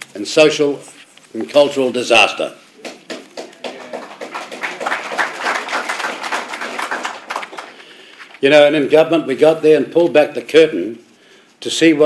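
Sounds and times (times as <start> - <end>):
audience applauding: 2.8 - 7.9.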